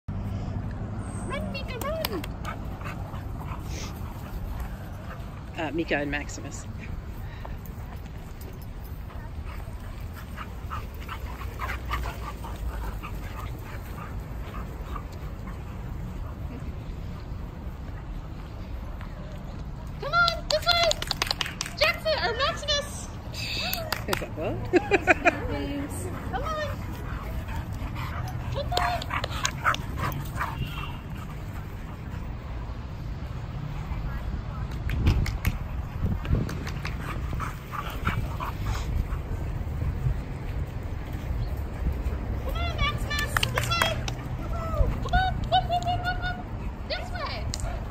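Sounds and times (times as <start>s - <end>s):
dogs playing rough: 2.2s - 5.6s, 7.7s - 18.4s, 23.2s - 33.7s, 35.2s - 45.1s.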